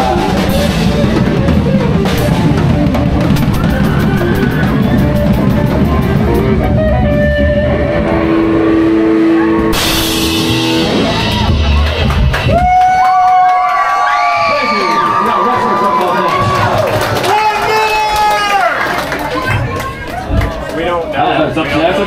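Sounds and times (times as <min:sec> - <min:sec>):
rock band playing: 0:00.0 - 0:13.7
cymbal crash: 0:09.7 - 0:11.8.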